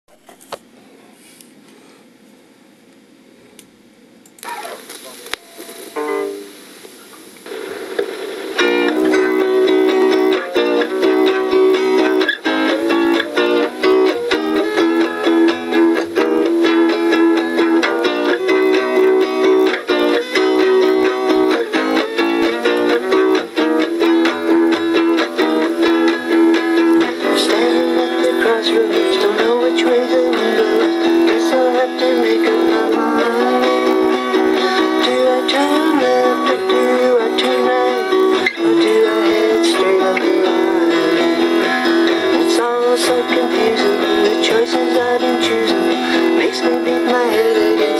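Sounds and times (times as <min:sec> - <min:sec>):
solo guitar strumming chords: 0:08.6 - 0:47.9.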